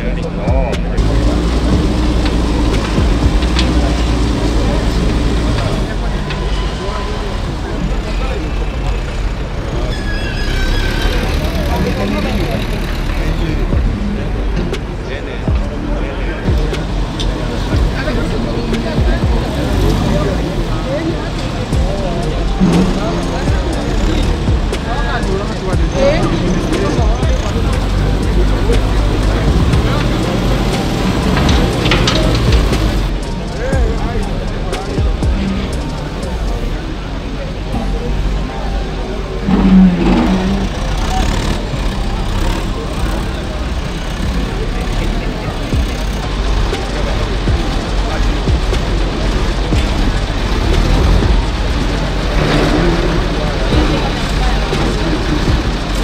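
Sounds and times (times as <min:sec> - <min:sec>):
excavator diesel engine running: 0:00.0 - 0:56.0
indistinct talk of many voices: 0:00.0 - 0:56.0.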